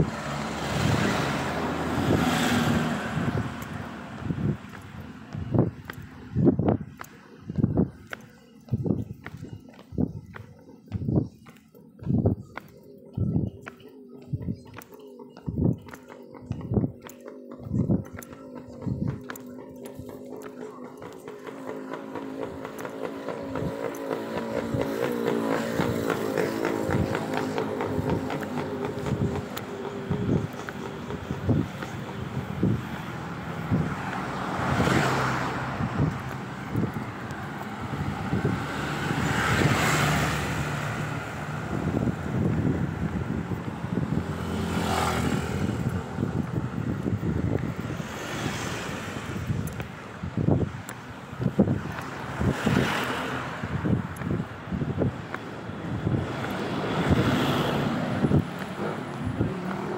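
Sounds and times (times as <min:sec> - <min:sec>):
vehicles passing: 0:00.0 - 0:59.9.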